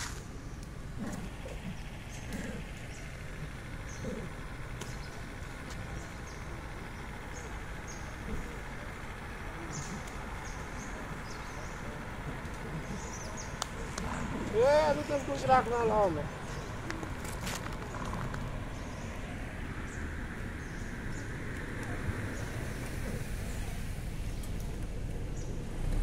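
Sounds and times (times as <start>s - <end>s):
steady low rumble: 0.0s - 26.0s.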